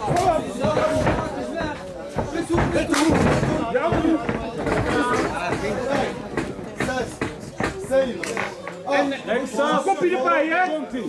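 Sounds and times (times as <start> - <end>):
sharp knocks: 0.0 - 8.8
people talking and calling out: 0.0 - 11.0.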